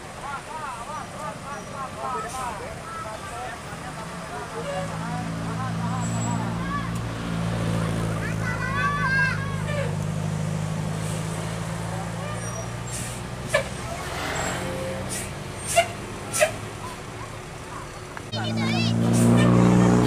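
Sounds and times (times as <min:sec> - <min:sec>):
diesel engine under load: 0:00.0 - 0:20.0
people shouting: 0:08.3 - 0:10.0.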